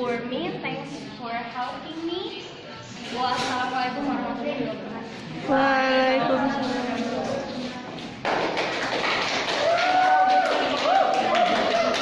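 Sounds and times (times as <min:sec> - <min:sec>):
people clapping: 0:07.9 - 0:12.0.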